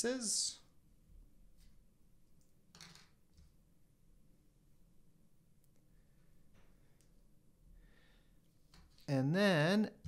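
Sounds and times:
plastic pieces clattering on table: 2.7 - 3.2.

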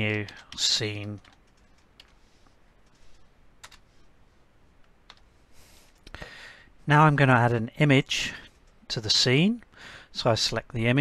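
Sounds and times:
keyboard keystrokes: 0.1 - 2.2.

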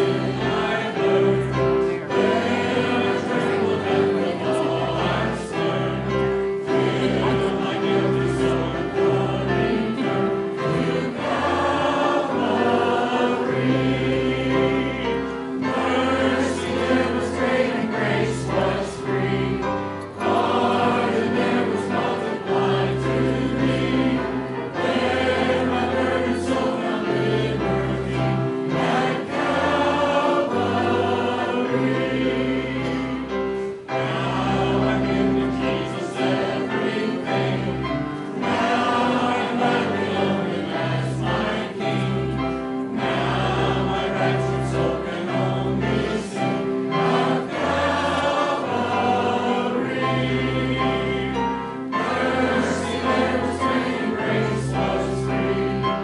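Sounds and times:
congregation singing a hymn: 0.0 - 56.0
instrumental accompaniment: 0.0 - 56.0.

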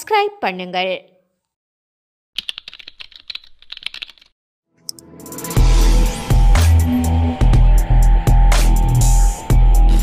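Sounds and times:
computer keyboard typing: 2.4 - 4.3.

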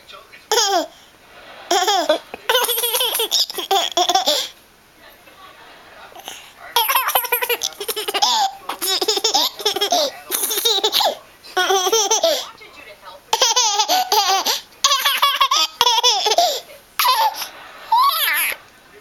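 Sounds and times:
toddler laughing: 0.5 - 1.0, 1.7 - 4.5, 6.2 - 12.5, 13.3 - 18.6.

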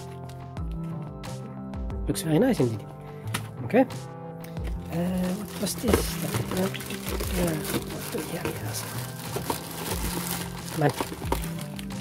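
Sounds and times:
background music: 0.0 - 12.0
plastic packaging crinkling: 4.7 - 12.0.

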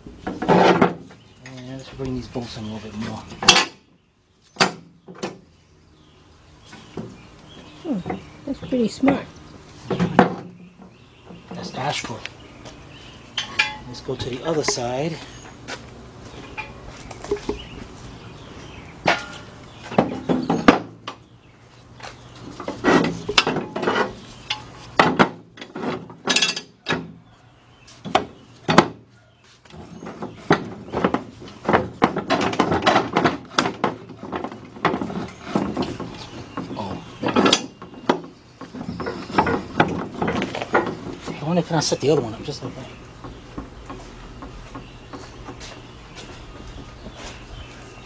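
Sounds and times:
metal jack stands clanking: 13.3 - 14.9, 19.0 - 21.2, 22.0 - 27.1, 31.7 - 41.4.

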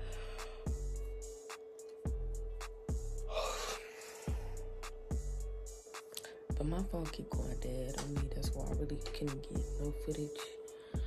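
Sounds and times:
person gasping: 0.0 - 0.8, 3.3 - 4.6
background music: 0.0 - 11.0
deep bass-drum hits: 7.4 - 9.8.

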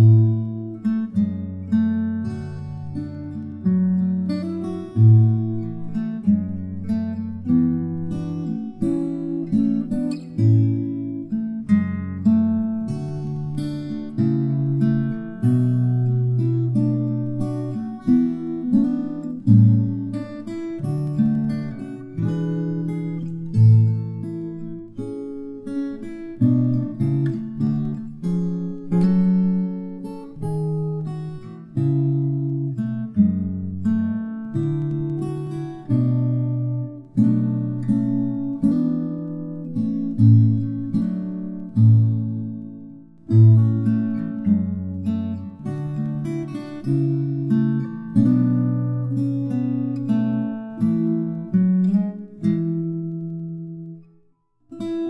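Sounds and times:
fingerpicked acoustic guitar: 0.0 - 55.0.

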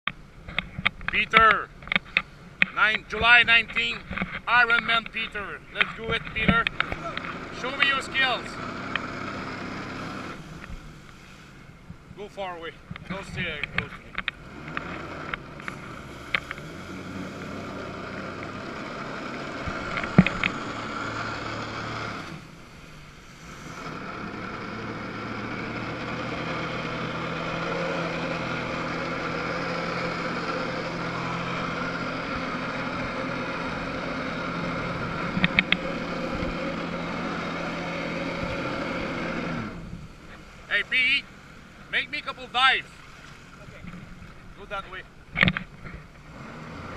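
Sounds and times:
jet ski engine revving: 0.6 - 46.9.

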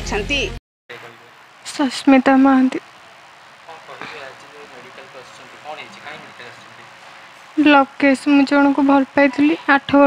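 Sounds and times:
low steady hum: 0.1 - 10.0.

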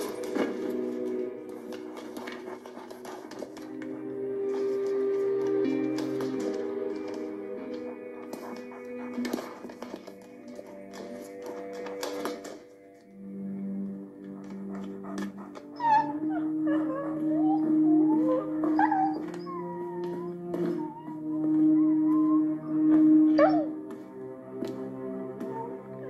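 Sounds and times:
dog whining and howling: 0.0 - 12.6, 13.6 - 26.0
background music with held tones: 0.0 - 26.0.

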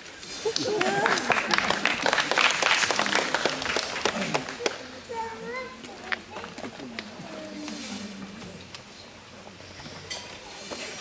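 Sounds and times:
audience applauding: 0.4 - 4.9
voices among clapping: 0.4 - 8.9.

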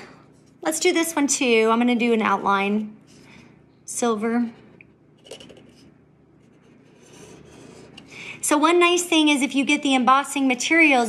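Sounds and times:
pen tip scratching on paper: 6.5 - 8.1.

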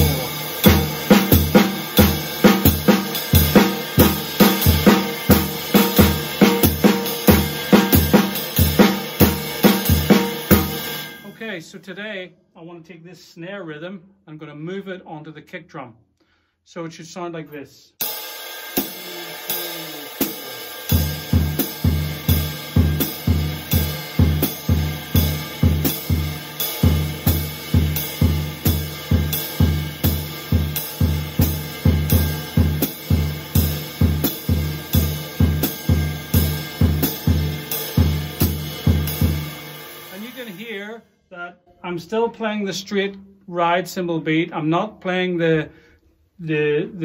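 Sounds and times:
ride cymbal beat: 0.0 - 11.4, 18.0 - 40.8
hi-hat: 18.0 - 40.6.

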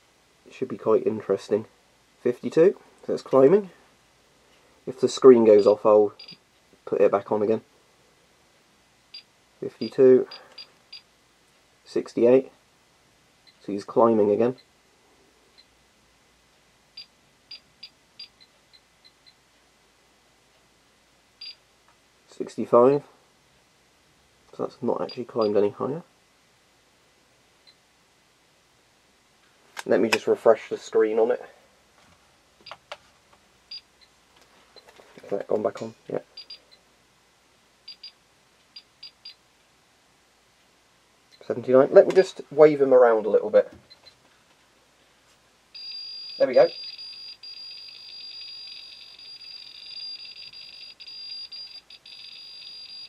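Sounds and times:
geiger counter beeps: 36.4 - 36.6, 37.9 - 38.2, 38.8 - 39.4, 45.8 - 53.0.

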